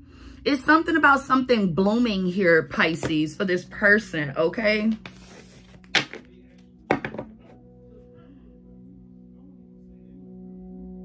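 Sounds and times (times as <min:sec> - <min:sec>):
quiet background music: 0:00.0 - 0:11.0
cards rustling: 0:04.9 - 0:06.3.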